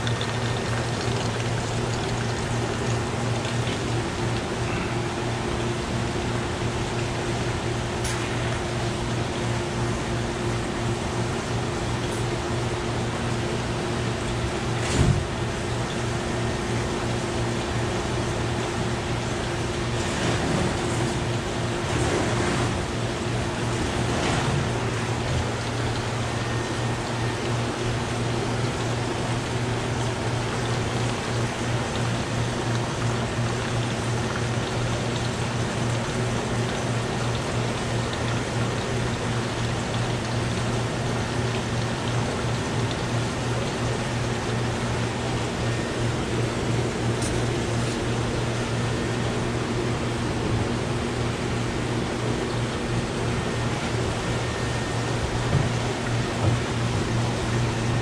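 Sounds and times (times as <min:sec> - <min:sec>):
aquarium filters and pumps: 0:00.0 - 0:58.0
constant low hum: 0:00.0 - 0:58.0.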